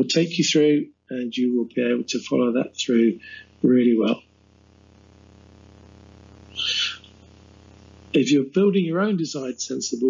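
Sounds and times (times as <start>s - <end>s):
low microphone hum: 0.0s - 10.0s
sharp intake of breath: 3.2s - 3.4s.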